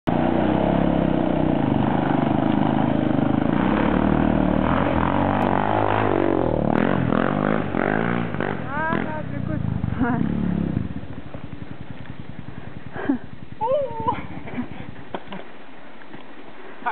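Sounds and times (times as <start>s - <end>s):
quad engine revving: 0.1s - 15.4s
people laughing: 13.0s - 15.4s
person saying ooh: 13.6s - 14.2s.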